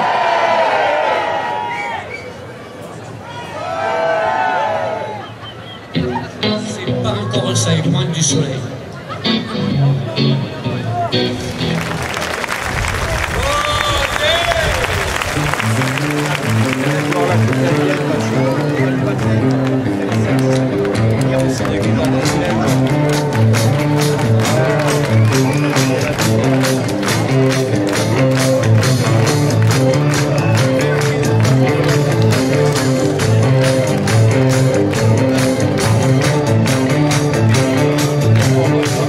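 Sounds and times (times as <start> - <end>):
crowd noise: 0.0 - 39.0
live rock band playing: 9.2 - 12.3, 15.2 - 39.0
hand claps in time: 11.7 - 39.0.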